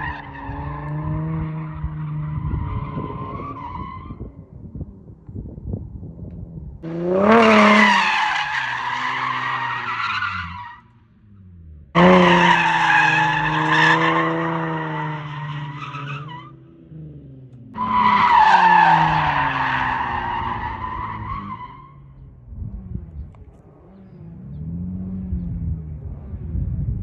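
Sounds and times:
car engine revving: 0.0 - 3.3, 6.8 - 27.0
tires squealing: 0.0 - 4.5, 6.8 - 11.0, 12.0 - 16.6, 17.7 - 22.3.

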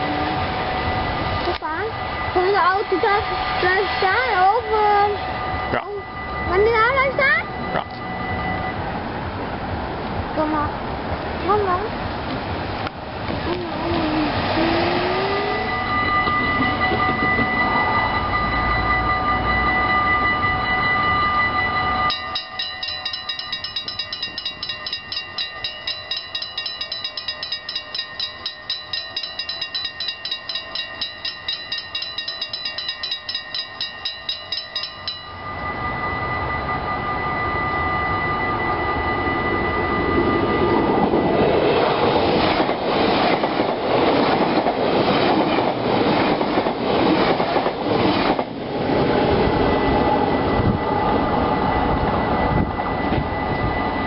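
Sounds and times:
level crossing warning bell: 0.0 - 9.2, 13.4 - 54.0
train wheels on rails: 0.0 - 54.0.

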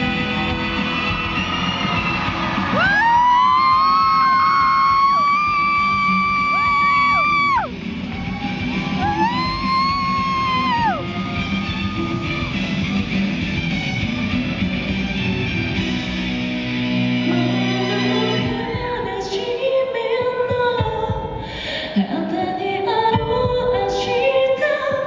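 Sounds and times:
live band playing: 0.0 - 18.9.

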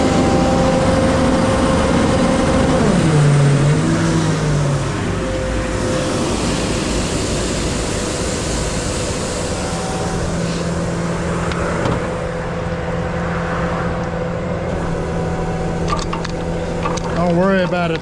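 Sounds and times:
high-pressure pump rushing: 0.0 - 12.7
truck engine winding down to idle: 0.0 - 18.0.

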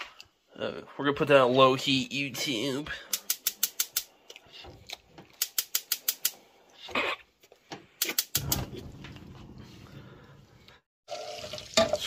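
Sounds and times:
stove spark igniter clicking: 3.1 - 4.1, 5.4 - 6.4, 8.0 - 8.7.

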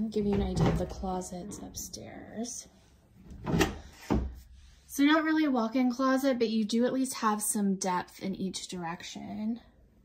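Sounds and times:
closet doors knocking open: 0.2 - 1.2.

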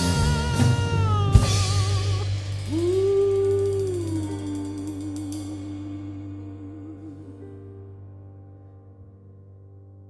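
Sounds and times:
woman singing long note: 0.0 - 7.7
piano bass and drums trio: 0.0 - 10.0.

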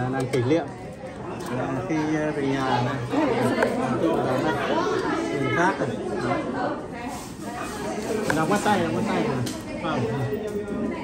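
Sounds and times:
overlapping chatter of people: 0.0 - 11.0.

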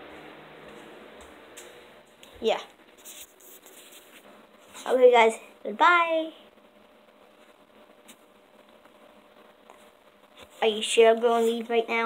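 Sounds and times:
boy speaking: 2.4 - 2.7, 4.8 - 6.4, 10.6 - 12.0
camera device rustling and scratching: 2.9 - 5.0.

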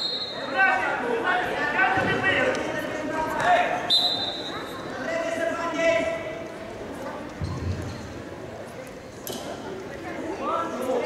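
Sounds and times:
voices echoing in hall: 0.0 - 11.0.

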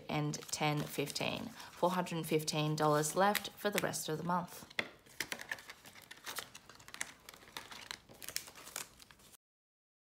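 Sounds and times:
plastic and banknotes crinkling: 0.2 - 2.4, 3.0 - 4.1, 5.0 - 9.4.

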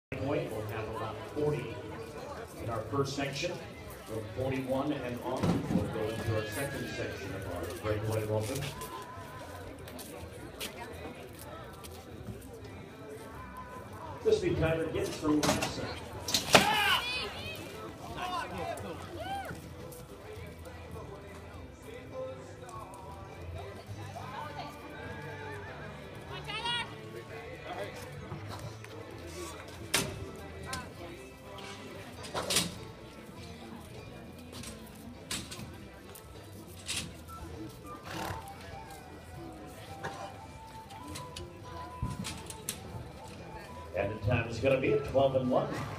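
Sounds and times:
horse whinnying: 6.1 - 7.4.

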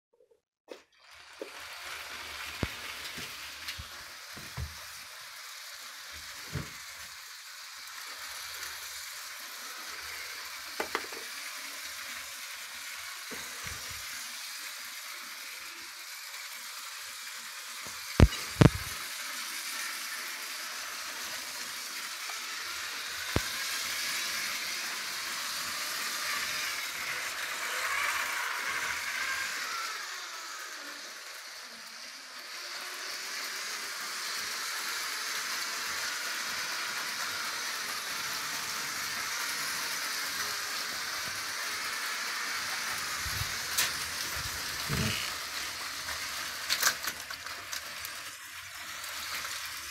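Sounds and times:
toy train rattling on track: 1.0 - 49.9.

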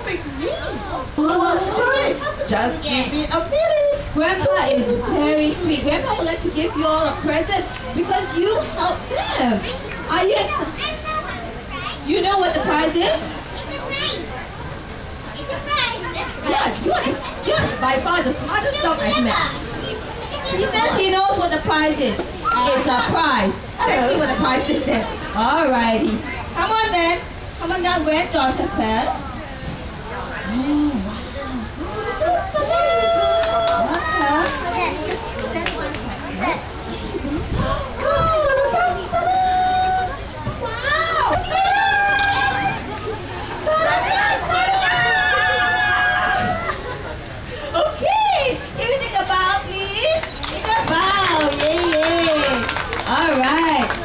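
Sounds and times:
children chattering and calling out: 0.0 - 54.0.

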